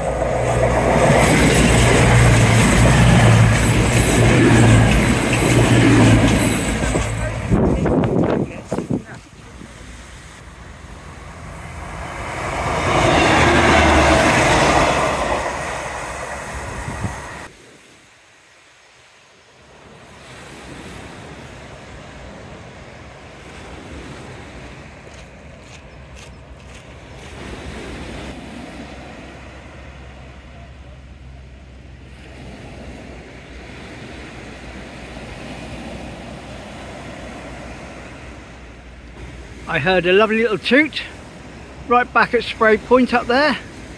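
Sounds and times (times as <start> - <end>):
diesel train passing: 0.0 - 17.5, 20.0 - 43.9
gentle surf on shore: 0.0 - 43.9.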